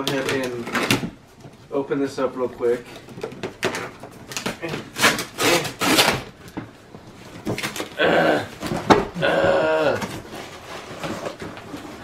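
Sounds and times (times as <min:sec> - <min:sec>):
packing tape ripping: 0:03.6 - 0:06.5
cardboard box tearing: 0:04.3 - 0:06.3.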